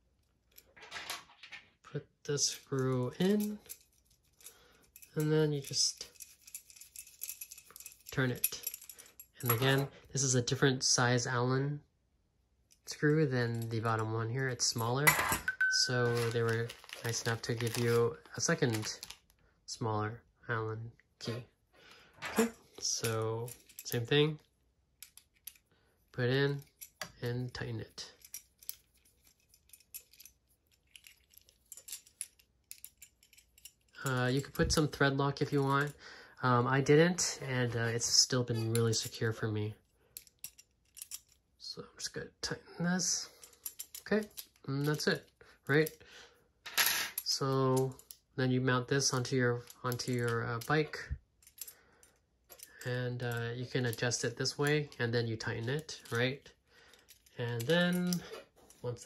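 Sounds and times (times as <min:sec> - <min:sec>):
small metal parts clicking: 0:02.5 - 0:09.8, 0:15.8 - 0:19.3, 0:22.3 - 0:24.1, 0:25.0 - 0:25.7, 0:26.5 - 0:34.8, 0:39.9 - 0:41.5, 0:43.3 - 0:46.0, 0:46.7 - 0:48.3, 0:49.0 - 0:59.0.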